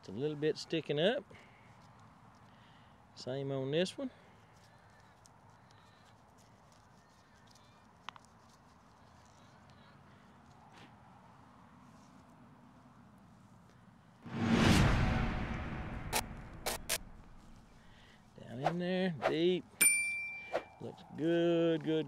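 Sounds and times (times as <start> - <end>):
loud swoosh: 14.2 - 17.9.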